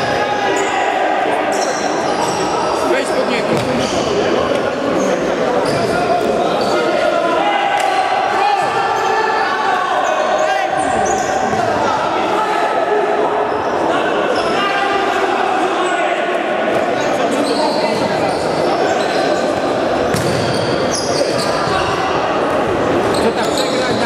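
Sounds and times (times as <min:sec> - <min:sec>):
players shouting in echoing hall: 0:00.0 - 0:24.0
ball kicked and bouncing on court: 0:03.5 - 0:03.9, 0:20.1 - 0:20.6.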